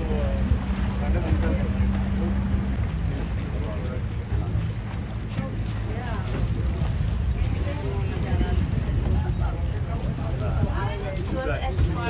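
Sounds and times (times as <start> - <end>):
boat engine humming: 0.0 - 12.0
wind on microphone: 0.0 - 12.0.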